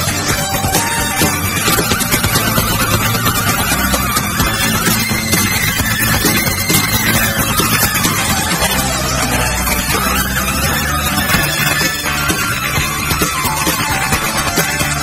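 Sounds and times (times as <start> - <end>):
progressive rock band playing: 0.0 - 15.0.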